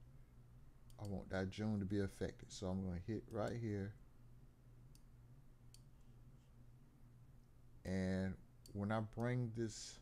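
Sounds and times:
low steady hum: 0:00.0 - 0:10.0
faint mouse clicks: 0:00.8 - 0:01.2, 0:05.7 - 0:06.1.

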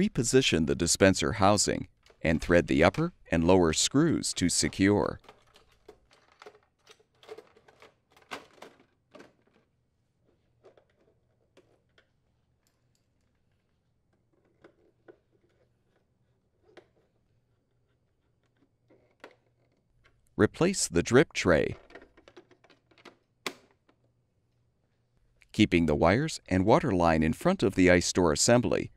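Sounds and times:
plastic clicks and knocks: 0:21.8 - 0:24.1.

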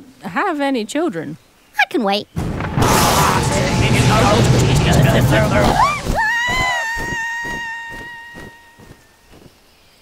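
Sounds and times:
high held screaming cry: 0:05.6 - 0:08.8.

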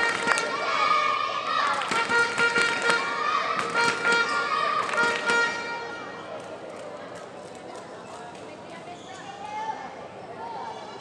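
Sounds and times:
racket hitting shuttlecock: 0:01.8 - 0:05.5
shoes squeaking on court floor: 0:08.9 - 0:09.4.

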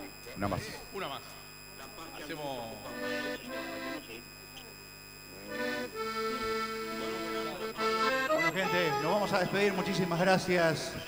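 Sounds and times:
live band music: 0:05.8 - 0:10.0.

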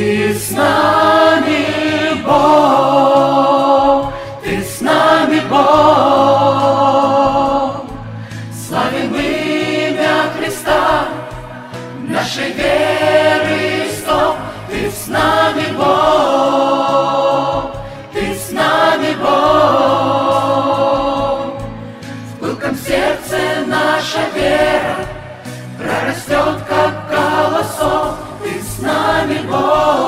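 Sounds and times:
mixed choir singing a hymn: 0:00.0 - 0:30.0.

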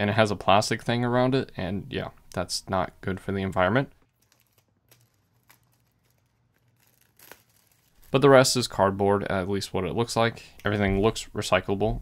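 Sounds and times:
soft tear of plastic: 0:04.0 - 0:08.2
plastic wrap crinkling: 0:04.0 - 0:08.6.

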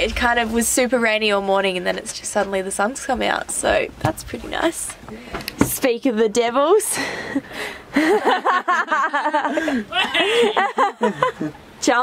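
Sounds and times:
people talking: 0:00.0 - 0:05.0, 0:05.6 - 0:07.4, 0:08.3 - 0:12.0
people laughing: 0:07.4 - 0:11.6.

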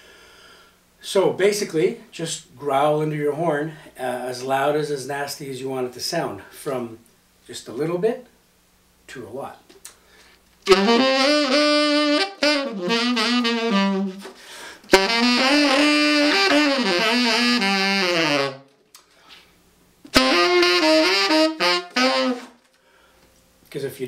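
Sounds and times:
tenor saxophone growling: 0:10.6 - 0:18.7, 0:20.1 - 0:22.6.

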